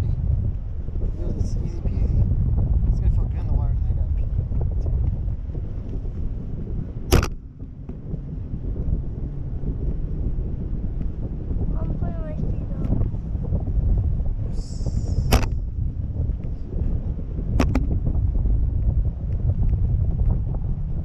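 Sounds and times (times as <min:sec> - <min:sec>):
wind rushing over microphone: 0:00.0 - 0:21.0
sharp click: 0:07.1 - 0:07.4, 0:15.3 - 0:15.6, 0:17.6 - 0:17.9.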